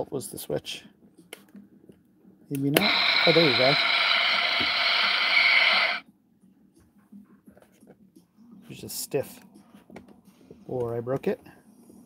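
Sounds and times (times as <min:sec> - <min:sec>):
toy speaker hissing rush: 0:02.7 - 0:06.0.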